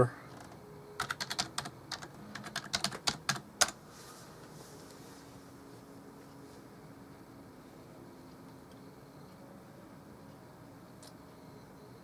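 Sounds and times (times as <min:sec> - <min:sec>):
keyboard typing clicks: 0:00.3 - 0:03.8.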